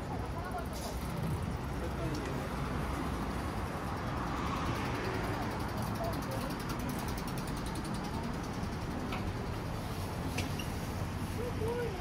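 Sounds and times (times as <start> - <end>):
passers-by talking: 0.0 - 12.0
traffic rumble: 0.0 - 12.0.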